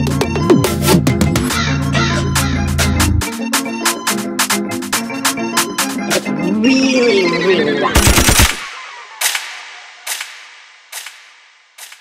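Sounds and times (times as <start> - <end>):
machine-gun sound effect: 8.0 - 12.0.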